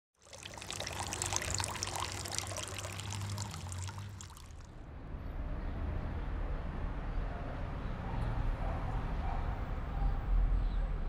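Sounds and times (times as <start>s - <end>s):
water pouring into a glass: 0.2s - 4.7s.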